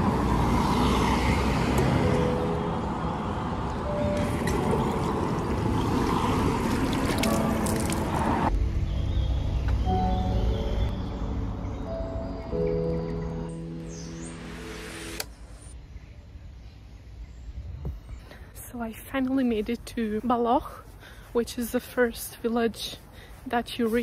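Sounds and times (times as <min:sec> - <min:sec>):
background music with held notes: 0:02.0 - 0:05.9, 0:07.1 - 0:15.3
water running into bottle: 0:04.2 - 0:08.5.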